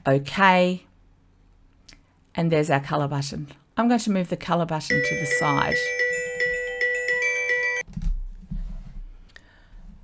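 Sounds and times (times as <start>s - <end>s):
electronic chime melody: 4.9s - 7.8s.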